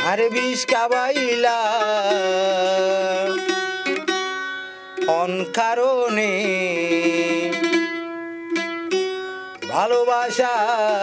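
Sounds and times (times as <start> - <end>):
mandolin plucking: 0.0 - 11.0
person singing folk song: 0.0 - 11.0.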